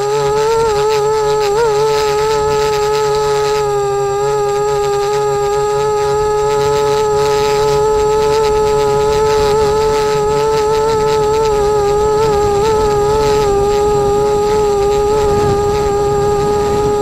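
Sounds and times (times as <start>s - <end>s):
drone propellers humming: 0.0s - 17.0s.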